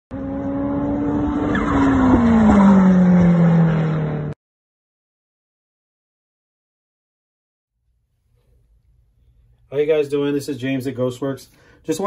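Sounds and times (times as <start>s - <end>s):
car engine sound effect: 0.1s - 4.4s.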